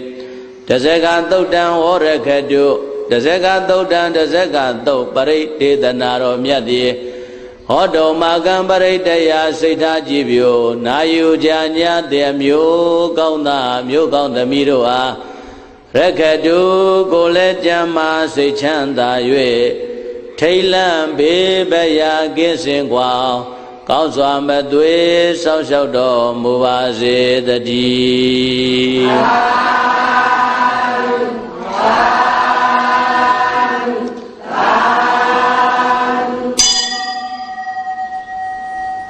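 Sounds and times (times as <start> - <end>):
person chanting: 0.0 - 15.3, 15.9 - 36.7.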